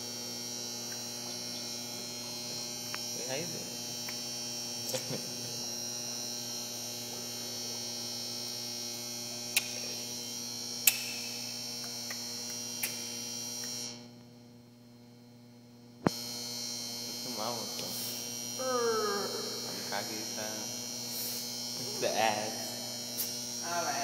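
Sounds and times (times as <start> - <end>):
electrical hum: 0.0 - 24.0.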